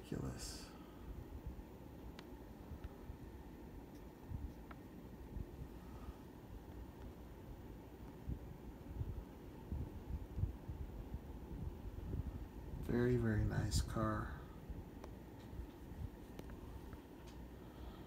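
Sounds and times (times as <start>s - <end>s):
faint low rumble: 0.0s - 18.0s.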